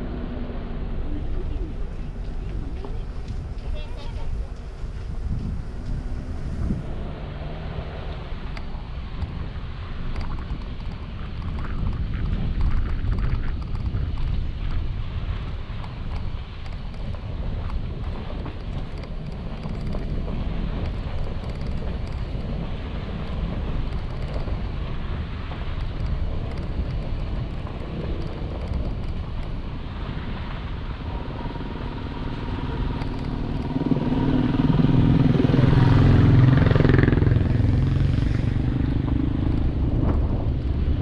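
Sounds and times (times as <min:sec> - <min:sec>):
vehicle engine rumble: 0:00.0 - 0:41.0
wind on microphone: 0:00.0 - 0:41.0.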